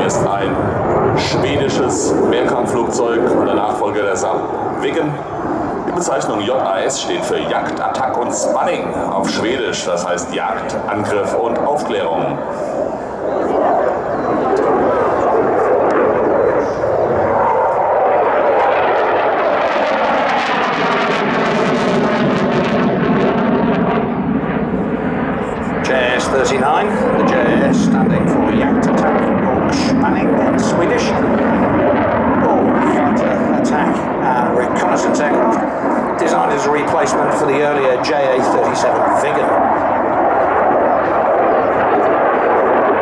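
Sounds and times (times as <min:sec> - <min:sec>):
jet engine roar: 0:00.0 - 0:43.0
jet passing whoosh: 0:00.0 - 0:43.0.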